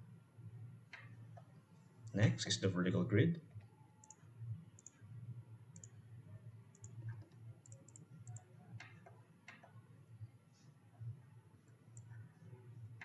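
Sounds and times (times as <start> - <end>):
low steady background hum: 0.0 - 13.0
computer mouse clicks: 3.6 - 5.0, 5.8 - 6.0, 6.7 - 9.8, 11.7 - 12.2.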